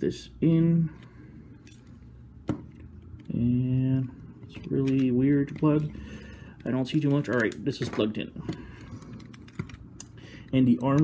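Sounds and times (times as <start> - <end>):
plastic parts clicking together: 4.0 - 11.0.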